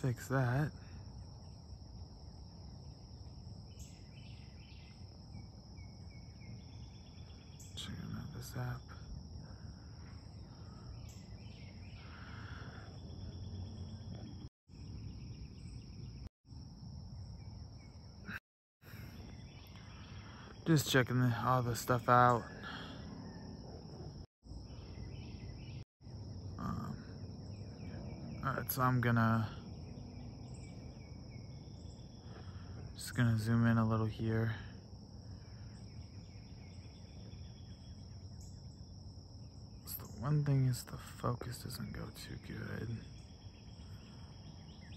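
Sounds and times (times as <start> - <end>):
high-pitched insect chorus: 0.0 - 44.9.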